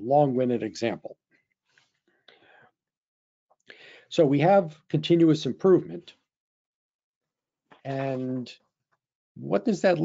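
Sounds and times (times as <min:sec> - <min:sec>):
man drawing breath: 0:01.7 - 0:02.7, 0:03.7 - 0:04.1.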